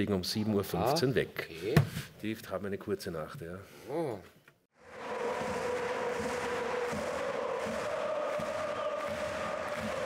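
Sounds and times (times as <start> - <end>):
crowd noise: 4.8 - 10.0
crowd singing a chant: 4.8 - 10.0.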